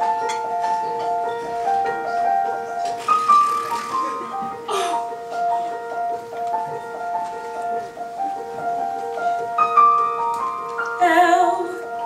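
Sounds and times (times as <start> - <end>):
keyboard playing soft held notes: 0.0 - 12.0.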